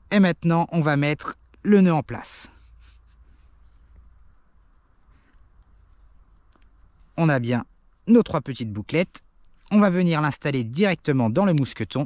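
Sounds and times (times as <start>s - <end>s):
cord rustling and scratching: 2.6s - 8.1s
small clicks: 6.4s - 6.9s.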